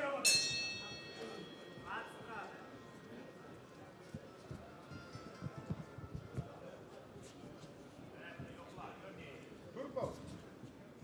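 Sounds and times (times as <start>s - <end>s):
bell ringing: 0.2s - 2.1s.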